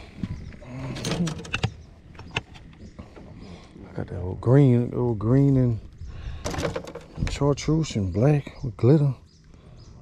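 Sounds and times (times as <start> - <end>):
boat lid and compartments clattering: 0.8 - 3.3, 6.4 - 7.4.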